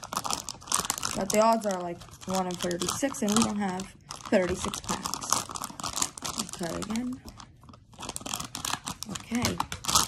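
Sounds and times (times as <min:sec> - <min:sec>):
plastic wrapper crinkling: 0:00.0 - 0:10.0
scissors cutting plastic: 0:07.9 - 0:10.0.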